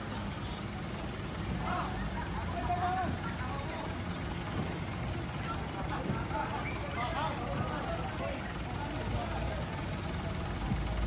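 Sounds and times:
faint distant voices: 0:00.0 - 0:11.0
traffic rumble: 0:00.0 - 0:11.0.

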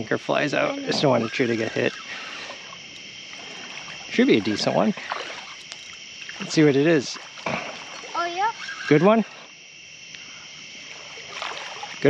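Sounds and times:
high insect drone: 0:00.0 - 0:12.0
water trickling: 0:00.0 - 0:12.0.

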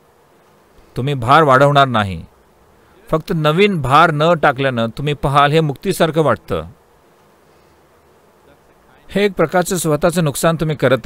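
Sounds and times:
background hiss and hum: 0:00.0 - 0:11.0.

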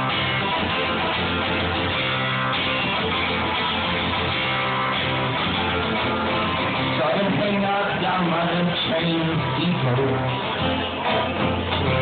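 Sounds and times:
guitar strumming chords: 0:00.0 - 0:12.0.

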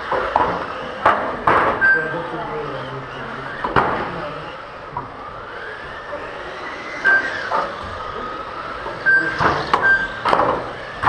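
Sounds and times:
rc car motors whining: 0:00.0 - 0:11.0
sharp knocks: 0:00.2 - 0:01.8.

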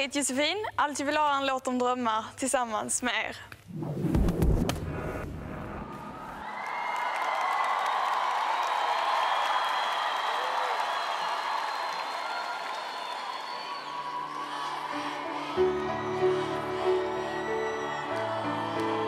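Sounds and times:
arena crowd cheering and applauding: 0:05.7 - 0:19.0.

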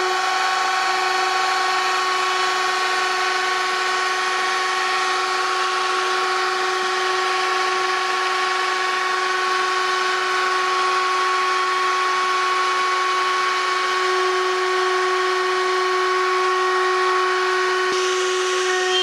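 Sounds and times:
wood router motor whining: 0:00.0 - 0:19.0.

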